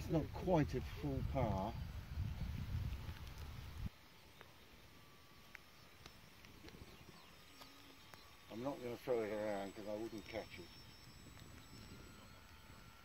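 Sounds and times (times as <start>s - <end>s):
wind buffeting microphone: 0.0s - 3.9s, 5.9s - 13.0s.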